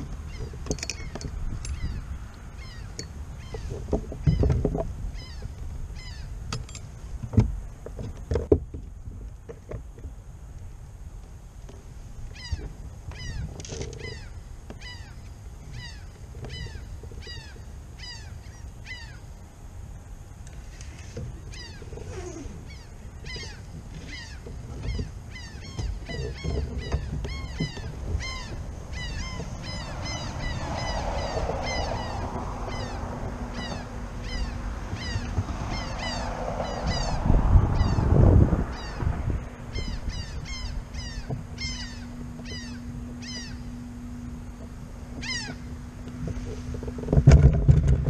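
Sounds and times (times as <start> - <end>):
birds calling: 0.0 - 10.1, 11.6 - 48.0.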